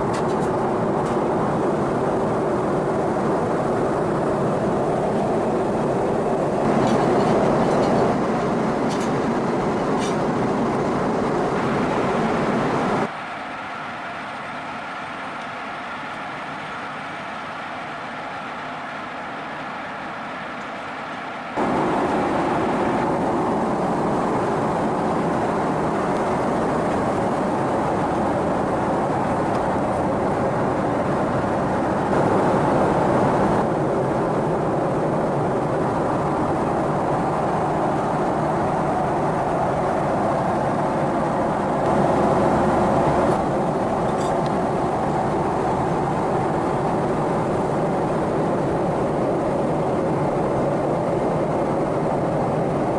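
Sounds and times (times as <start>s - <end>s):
airplane cabin hum: 0.0s - 52.9s.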